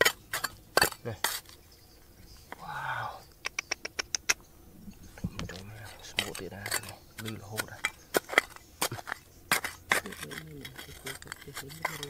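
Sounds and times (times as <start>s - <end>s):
trowel scraping stones and gravel: 0.0s - 2.6s, 5.4s - 12.0s.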